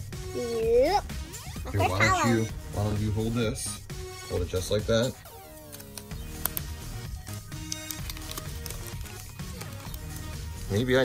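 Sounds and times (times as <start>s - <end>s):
background music with bass: 0.0s - 11.0s
foil pack crinkling: 7.8s - 10.3s.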